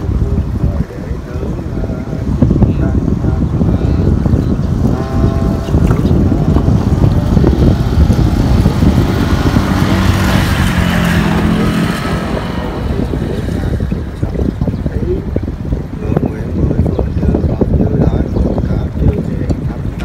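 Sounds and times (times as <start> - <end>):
traffic drone: 0.0 - 15.8
wind buffeting microphone: 0.0 - 20.0.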